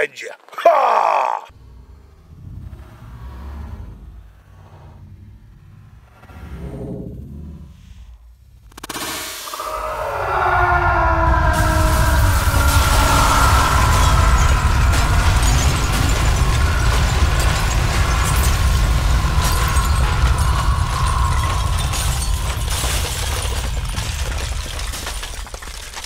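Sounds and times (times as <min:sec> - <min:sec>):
deep explosion rumble with crackling: 0:10.7 - 0:26.0.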